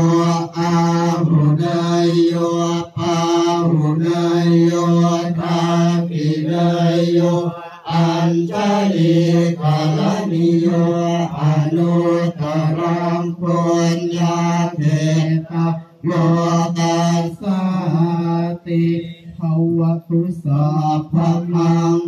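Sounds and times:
monotone chanting: 0.0 - 22.0.

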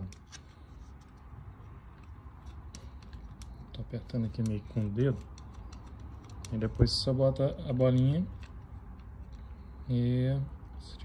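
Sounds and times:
faint clicks and rubbing: 0.0 - 6.9.

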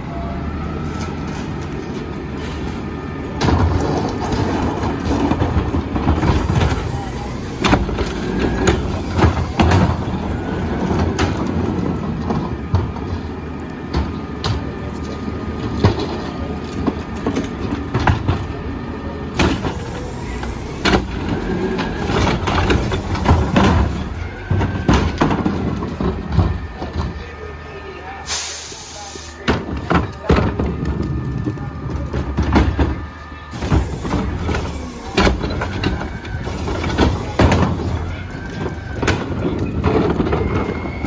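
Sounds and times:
garbage truck idling: 0.0 - 41.0
air hiss: 28.3 - 29.4
plastic carts knocking and rattling: 33.6 - 41.0.

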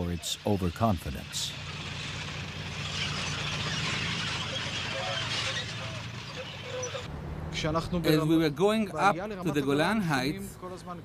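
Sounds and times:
heavy vehicle engine drone: 0.0 - 11.0.

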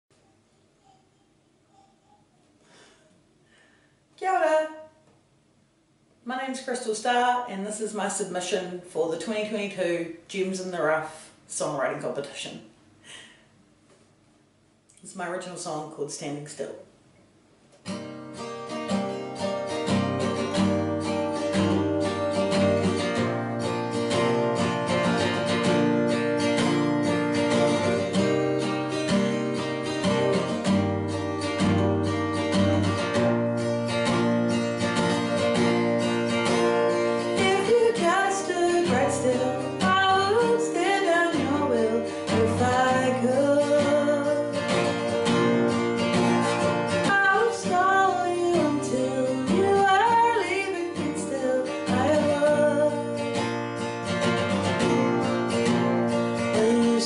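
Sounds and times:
acoustic guitar strumming: 17.8 - 57.0
woman singing: 37.2 - 44.7, 47.0 - 53.3, 56.4 - 57.0.

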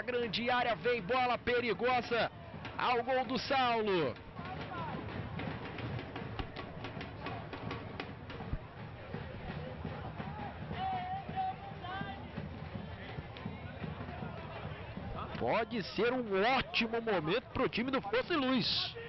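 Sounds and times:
distant voices of players and spectators: 0.0 - 19.0
scattered knocks: 4.1 - 8.6.

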